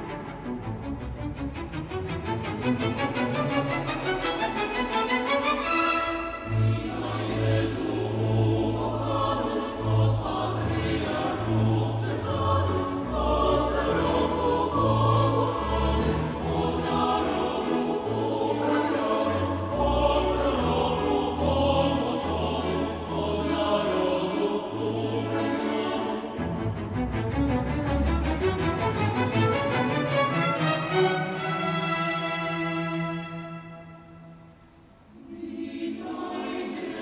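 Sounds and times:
choir singing a carol: 0.0s - 37.0s
string orchestra: 0.0s - 37.0s.

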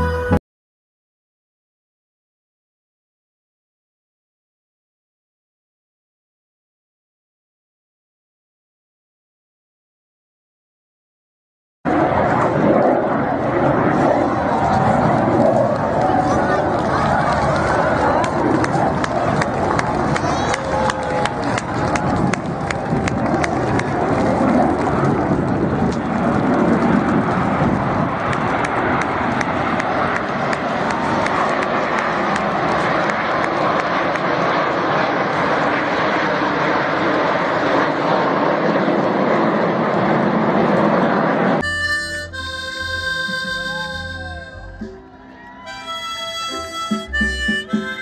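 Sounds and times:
music with held notes: 0.0s - 0.4s, 41.6s - 48.0s
jet aircraft roaring overhead: 11.9s - 48.0s.

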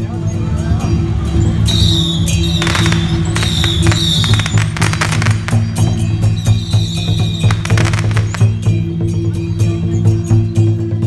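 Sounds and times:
firecrackers crackling: 1.8s - 8.8s.

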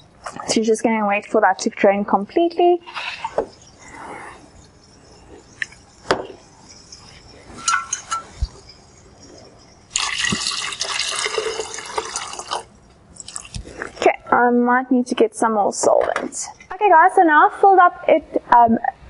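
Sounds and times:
glass clinking: 2.9s - 13.5s
liquid pouring into jug: 7.6s - 14.0s.

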